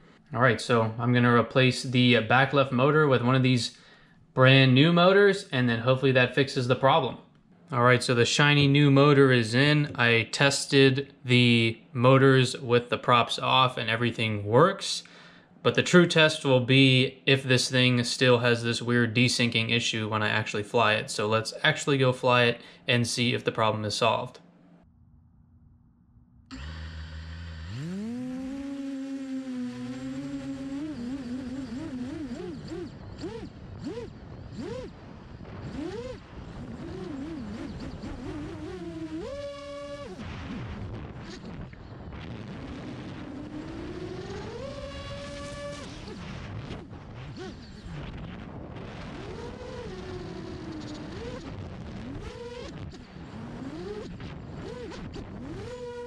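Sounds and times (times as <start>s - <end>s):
drone motors whining: 26.4s - 56.0s.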